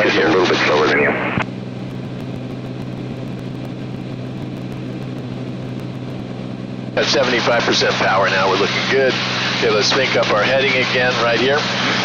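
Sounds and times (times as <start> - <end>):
propeller plane engine droning: 0.0 - 12.0.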